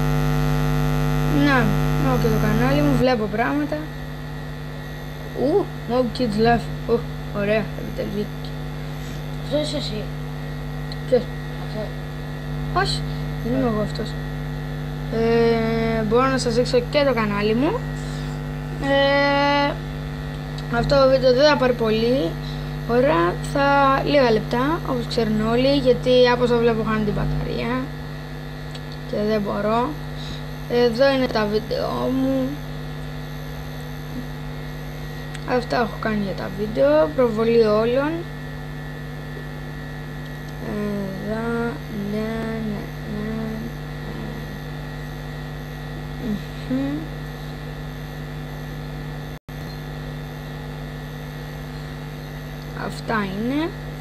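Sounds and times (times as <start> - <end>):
mains hum: 0.0 - 54.0
person speaking: 1.3 - 3.9, 9.4 - 10.1, 12.8 - 14.2, 15.1 - 19.8, 20.6 - 27.9.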